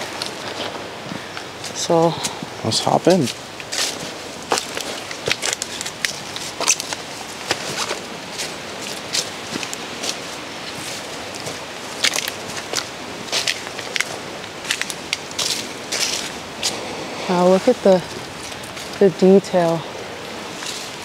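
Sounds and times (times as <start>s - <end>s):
footsteps crunching through dry leaves: 0.0s - 21.0s.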